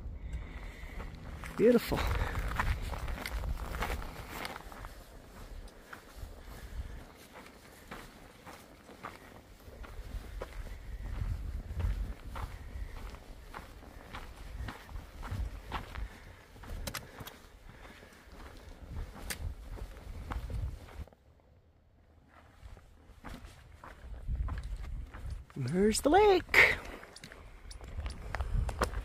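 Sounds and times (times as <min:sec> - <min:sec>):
low rumble: 0:00.0 - 0:05.7
footsteps on rocky trail: 0:00.0 - 0:21.3, 0:22.1 - 0:29.0
trekking pole tips clicking: 0:16.7 - 0:17.4, 0:19.2 - 0:19.5, 0:26.8 - 0:29.0.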